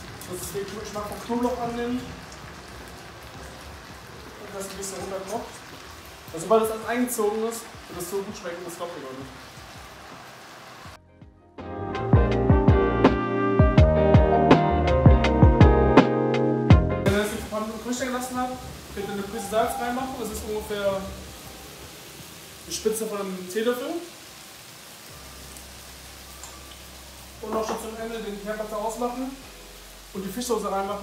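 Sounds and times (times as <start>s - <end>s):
vegetables sizzling in a frying pan: 0.0s - 11.0s, 17.1s - 31.0s
music with a beat: 11.0s - 17.1s.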